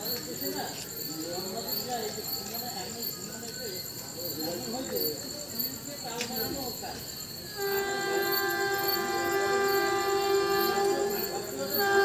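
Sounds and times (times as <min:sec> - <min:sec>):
faint voices: 0:00.0 - 0:12.0
train horn blast: 0:07.5 - 0:12.0.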